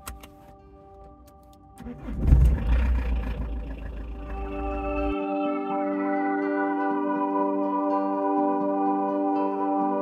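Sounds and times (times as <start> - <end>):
car engine starting and idling: 0.0 - 5.2
quiet background music: 0.0 - 10.0.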